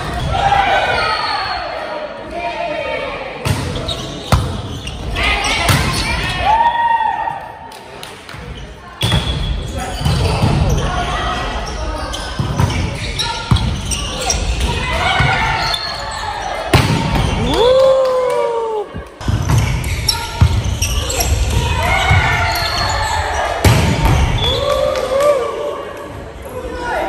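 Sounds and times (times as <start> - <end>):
players calling and shouting: 8.8 - 27.0.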